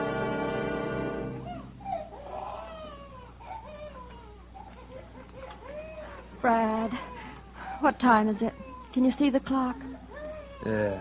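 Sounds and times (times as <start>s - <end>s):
baby crying: 1.2s - 11.0s.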